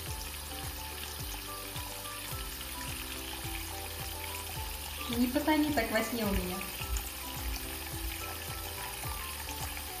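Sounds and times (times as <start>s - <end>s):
background music with beat: 0.0s - 10.0s
tap water running into sink: 0.0s - 10.0s.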